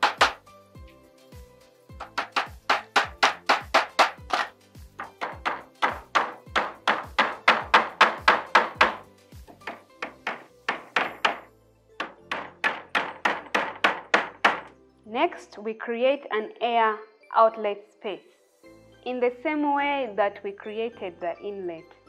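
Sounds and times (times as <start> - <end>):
hammer driving nails into timber: 0.0 - 0.4, 2.0 - 14.7.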